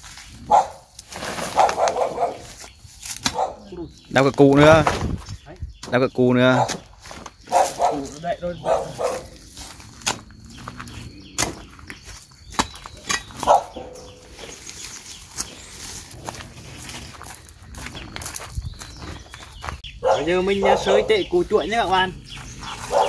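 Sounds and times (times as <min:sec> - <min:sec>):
steel bar striking soil: 0:11.4 - 0:11.7, 0:12.5 - 0:13.5.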